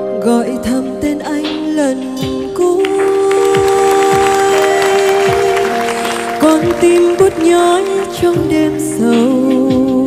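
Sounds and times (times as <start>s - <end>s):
audience applause: 3.0s - 9.0s.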